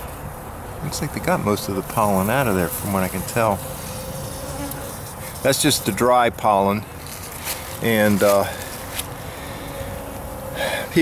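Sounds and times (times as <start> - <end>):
outdoor background noise: 0.0 - 11.0
bees buzzing: 2.0 - 5.4.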